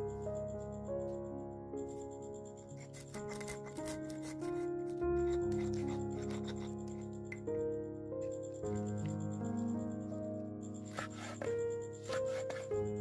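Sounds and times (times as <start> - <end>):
background music: 0.0 - 13.0
stone pestle grinding in mortar: 2.9 - 6.9, 10.9 - 12.7.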